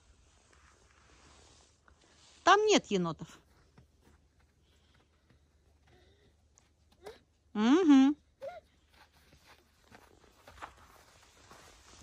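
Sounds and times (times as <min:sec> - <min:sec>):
footsteps crunching in snow: 0:08.8 - 0:12.0.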